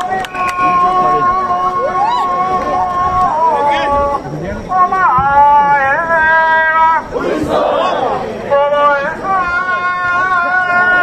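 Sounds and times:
men shouting together: 4.8 - 11.0.

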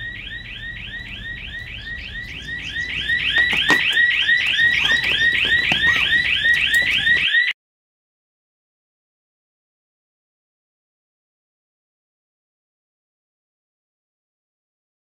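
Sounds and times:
electronic alarm whooping: 0.0 - 7.6.

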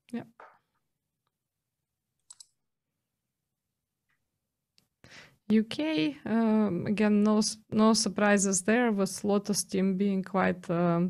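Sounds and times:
sharp clicks: 2.2 - 2.5.

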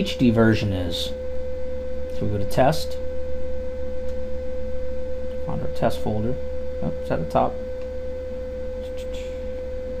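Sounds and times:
low hum: 0.0 - 10.0
steady electrical whine: 0.0 - 10.0.

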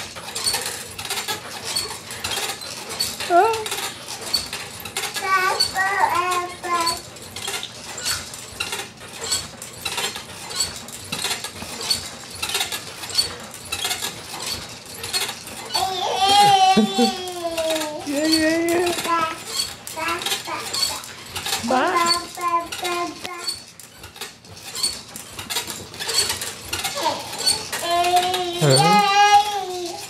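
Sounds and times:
springs and toys rattling: 0.0 - 30.0
baby babbling: 15.8 - 18.2, 27.0 - 30.0
adult laughing: 16.4 - 17.2.

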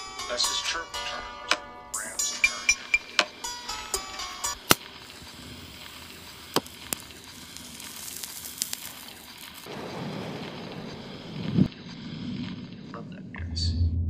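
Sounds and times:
electronic music: 2.0 - 4.6
low rumbling texture: 4.8 - 14.0.

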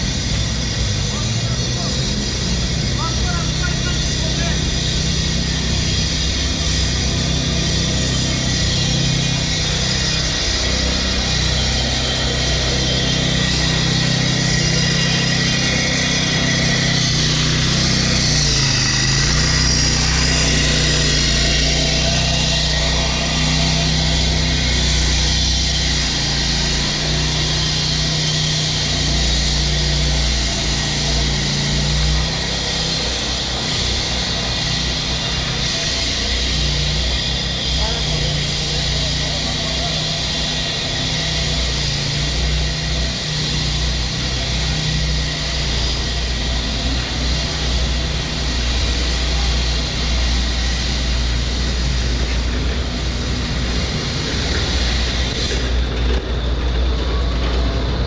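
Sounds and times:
plate compactor engine drone: 0.0 - 58.0.

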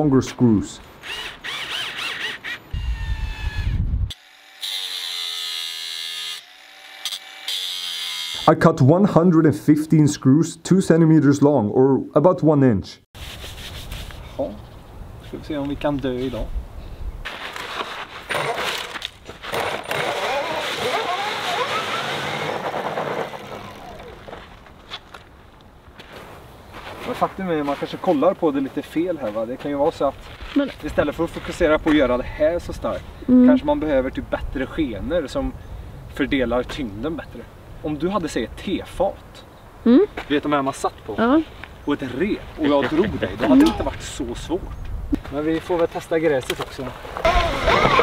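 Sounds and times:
power drill driving screws: 1.0 - 8.4, 18.3 - 24.4
angle grinder cutting: 1.0 - 8.5, 19.5 - 24.4.

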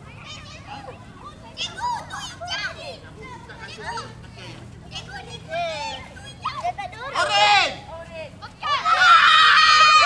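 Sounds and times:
young girls chattering: 0.0 - 7.2.

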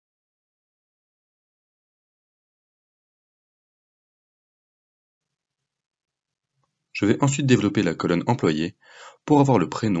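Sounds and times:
man speaking: 7.0 - 10.0.

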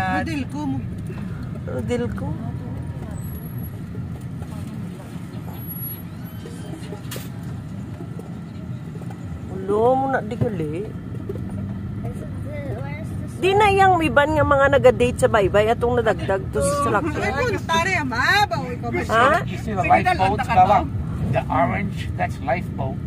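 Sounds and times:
car engine and road noise: 0.0 - 23.0.

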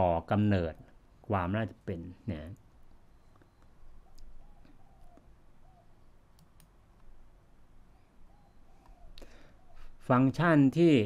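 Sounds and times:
computer mouse clicks: 2.4 - 5.3, 6.2 - 7.1.

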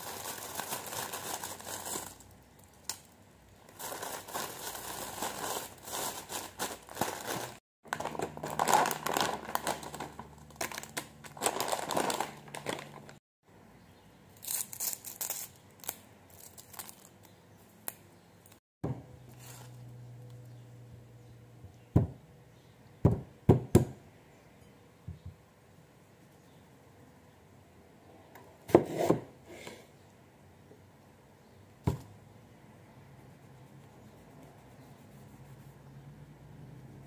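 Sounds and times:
plastic bag crinkling: 0.0 - 2.8, 3.6 - 13.2.

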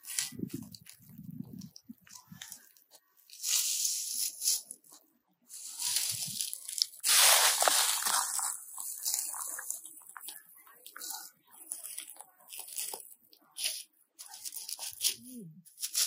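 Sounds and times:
footsteps crunching through dry leaves: 5.6 - 9.9.

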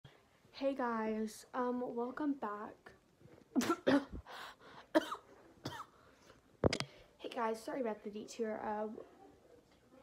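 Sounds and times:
girl coughing: 3.6 - 4.3, 4.9 - 5.9
girl breathing: 4.2 - 4.9.

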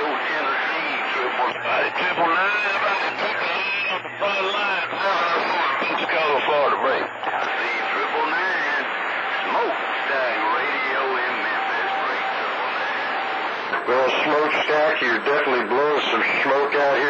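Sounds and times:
garbled radio voices: 0.0 - 17.0
radio static: 0.0 - 17.0.

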